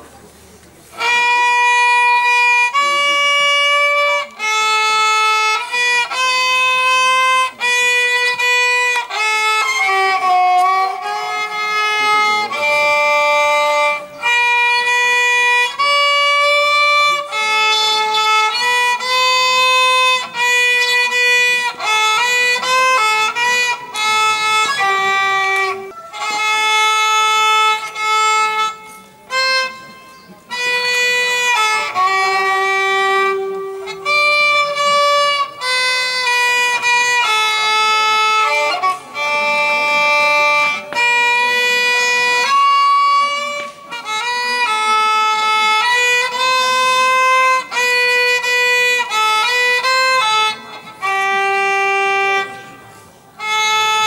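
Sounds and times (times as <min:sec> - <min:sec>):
solo violin melody: 0:00.0 - 0:54.0.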